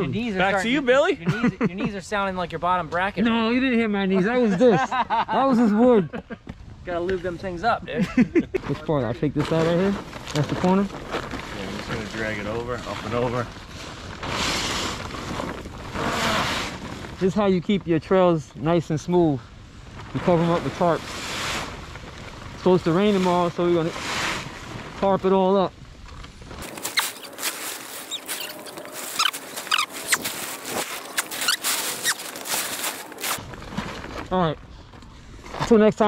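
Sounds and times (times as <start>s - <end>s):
tarp rustling and crackling: 9.3s - 36.0s.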